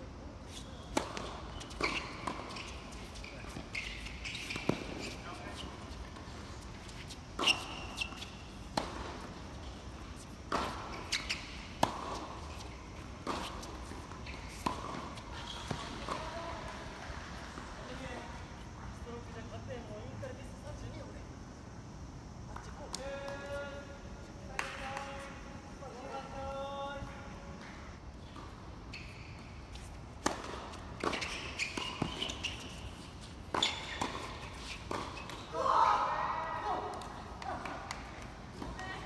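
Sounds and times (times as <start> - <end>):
tennis balls struck by racquets: 7.2 - 16.4, 30.1 - 35.6.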